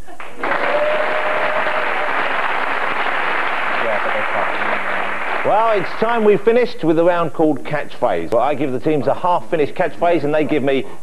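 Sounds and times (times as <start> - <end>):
studio audience applauding: 0.0 - 6.4.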